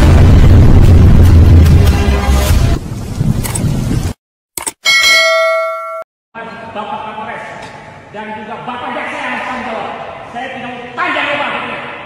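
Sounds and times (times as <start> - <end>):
loud intro music: 0.0 - 3.3
bell-like ding: 4.8 - 6.1.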